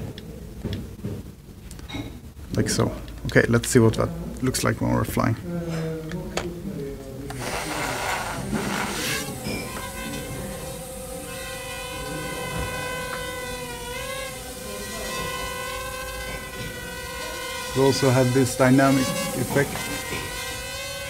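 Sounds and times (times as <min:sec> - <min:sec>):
quadcopter high-pitched whine: 0:07.3 - 0:21.0
quadcopter motors rushing: 0:07.3 - 0:21.0.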